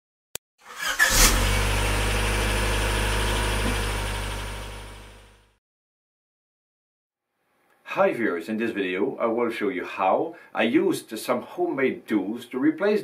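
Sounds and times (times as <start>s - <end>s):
car engine cranking and idling: 0.7s - 5.5s.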